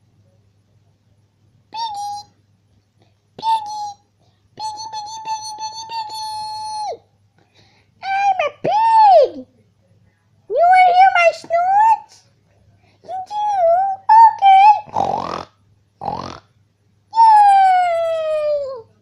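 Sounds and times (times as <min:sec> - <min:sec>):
child squealing: 0:17.2 - 0:18.9.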